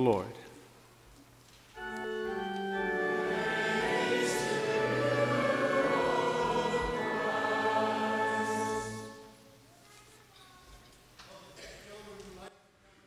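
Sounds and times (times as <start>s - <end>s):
congregation singing in unison: 1.8s - 9.5s
organ chords: 1.8s - 9.6s.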